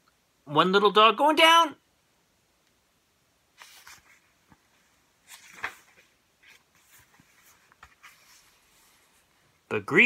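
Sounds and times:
page of book turning: 0:03.6 - 0:09.3.

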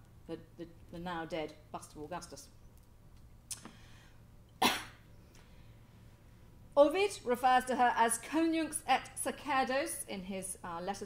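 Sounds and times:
faint low hum: 0:00.0 - 0:11.0
person coughing: 0:04.6 - 0:05.0.

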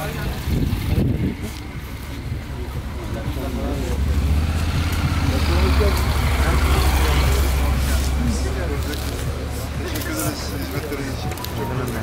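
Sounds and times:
low engine rumble: 0:00.0 - 0:12.0
people talking: 0:00.0 - 0:12.0.

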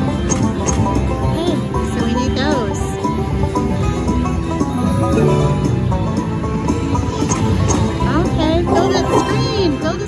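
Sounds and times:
banjo bluegrass music: 0:00.0 - 0:10.0.

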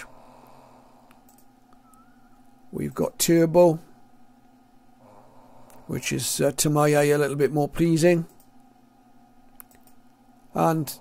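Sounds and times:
faint background hum and hiss: 0:00.0 - 0:11.0
faint short clicks: 0:09.6 - 0:10.1.

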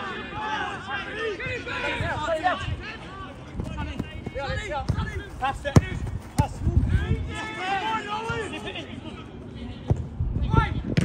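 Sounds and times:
players shouting: 0:00.0 - 0:09.6
football kicked thud: 0:03.6 - 0:06.9.

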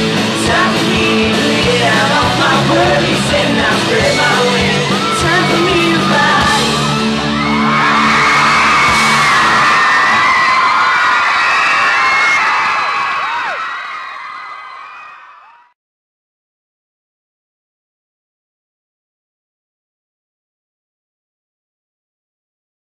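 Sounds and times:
live rock band playing: 0:00.0 - 0:10.4
crowd screaming and cheering: 0:00.0 - 0:15.8.

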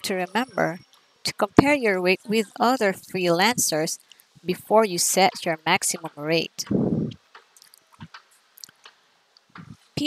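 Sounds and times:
mouth clicks and lip noises: 0:06.0 - 0:09.8.

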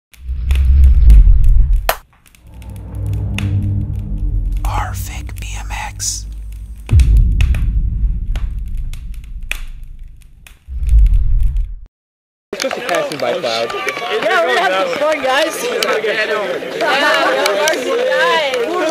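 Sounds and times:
deep bass booms: 0:00.3 - 0:11.9
held drone: 0:02.4 - 0:05.4, 0:06.1 - 0:07.7
sweeping whispery effects: 0:02.4 - 0:10.4.

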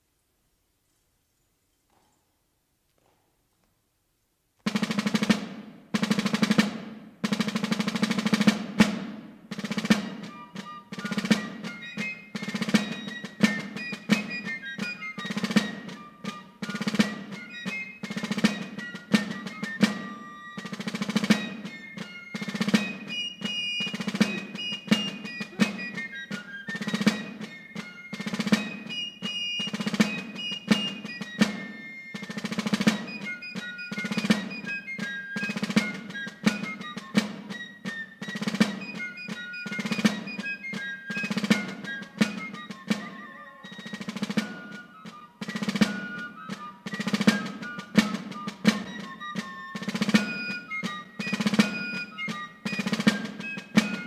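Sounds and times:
fife melody: 0:04.6 - 0:54.0
snare drum rolls: 0:04.6 - 0:54.0.

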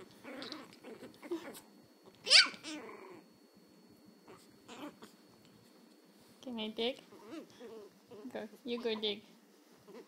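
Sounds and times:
puppy growling faintly: 0:00.0 - 0:03.5, 0:04.1 - 0:05.4, 0:07.0 - 0:09.2, 0:09.8 - 0:10.0.

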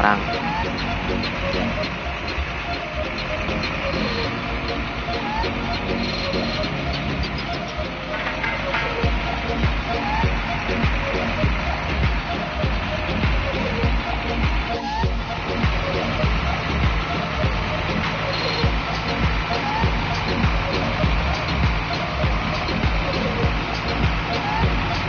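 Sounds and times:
indistinct voices: 0:00.0 - 0:25.0
low thumps: 0:00.0 - 0:25.0
music: 0:00.0 - 0:25.0
vehicle noise: 0:00.0 - 0:25.0.

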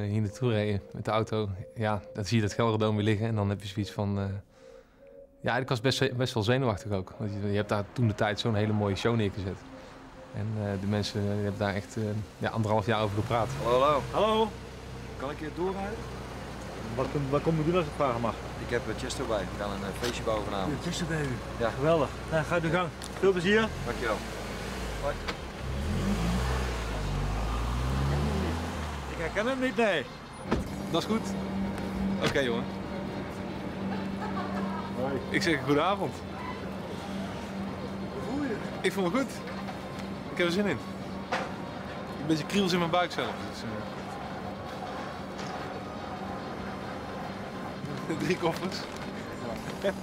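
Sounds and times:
outdoor background noise: 0:07.2 - 0:50.0
car engine accelerating: 0:07.7 - 0:50.0.

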